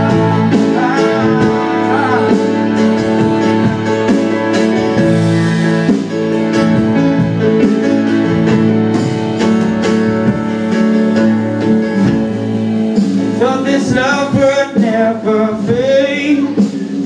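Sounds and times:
strummed acoustic guitar: 0.0 - 16.9
electric guitar: 0.0 - 17.0
held keyboard chords: 0.0 - 17.0.

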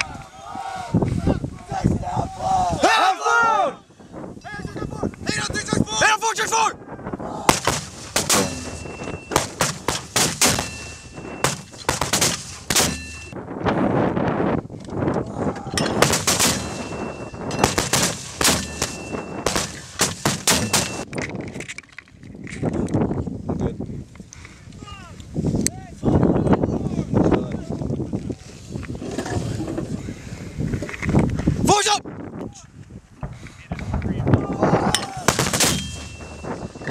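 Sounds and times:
mortars firing: 7.4 - 13.4, 15.8 - 21.1, 35.1 - 36.9.

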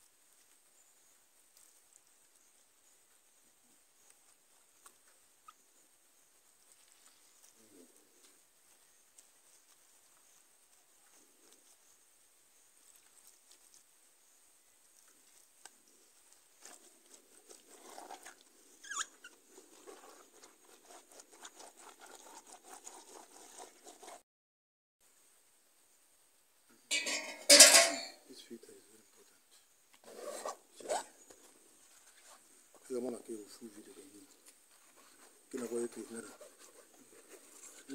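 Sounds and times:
hands squelching wet leaves: 12.7 - 13.9.

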